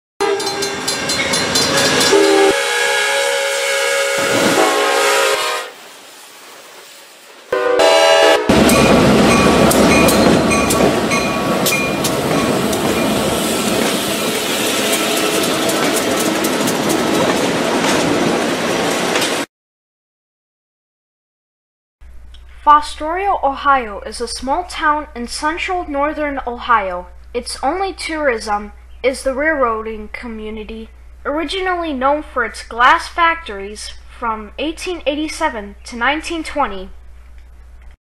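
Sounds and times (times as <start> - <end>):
locomotive air horn: 0.2 - 1.1, 1.7 - 5.8, 7.5 - 9.3, 12.5 - 16.2
train wheels clattering over rails: 0.5 - 2.5, 8.5 - 19.4.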